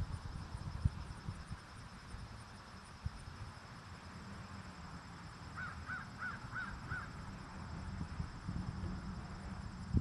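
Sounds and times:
bird harsh calls: 5.6 - 7.2.

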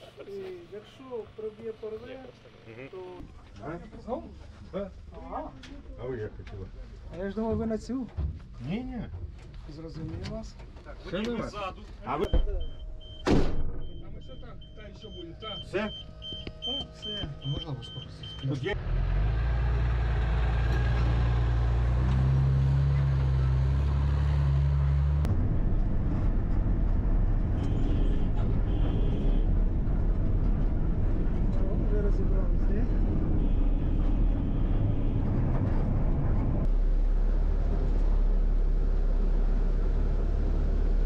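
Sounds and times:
vehicle engine low hum: 12.2 - 41.0
engine and drivetrain rumble: 18.7 - 41.0.

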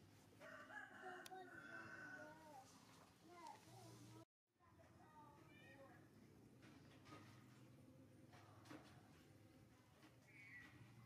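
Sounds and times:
rooster crowing: 0.4 - 2.6.

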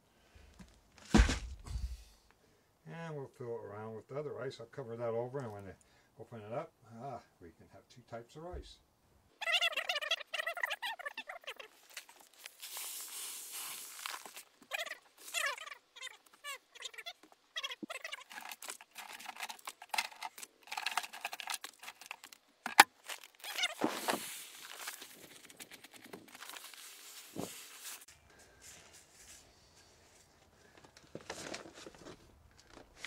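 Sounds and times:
dry rice poured into plastic bucket: 12.4 - 14.4.

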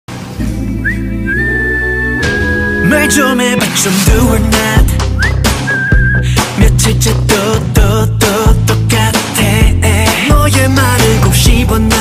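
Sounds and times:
bass line: 0.3 - 12.0
whistled melody: 0.7 - 3.6, 5.0 - 6.4.

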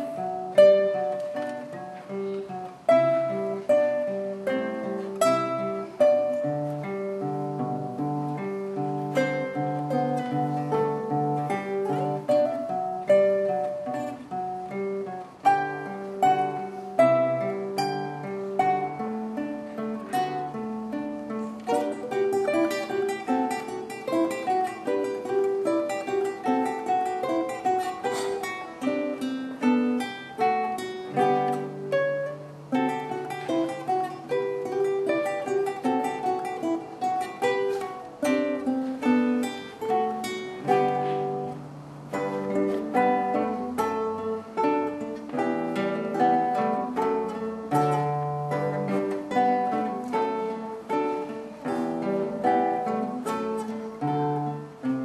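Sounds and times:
classical guitar duet: 0.0 - 55.0.

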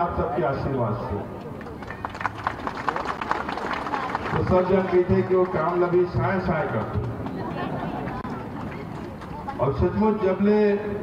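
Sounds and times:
crowd clapping: 1.4 - 9.6.

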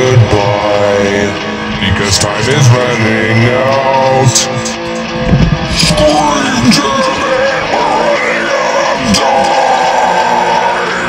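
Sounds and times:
heavy rock band playing: 0.0 - 11.0.

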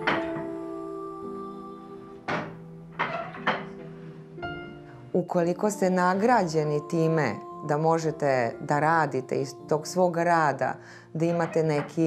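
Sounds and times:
soft background music with strings: 0.0 - 12.0
wooden loom knocks: 2.3 - 3.8.

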